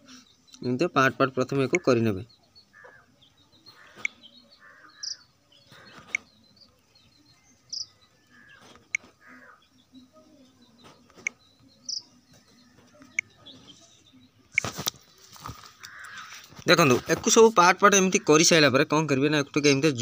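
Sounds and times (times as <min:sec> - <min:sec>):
faint background sound: 0:00.0 - 0:20.0
high bird chirps: 0:00.0 - 0:20.0.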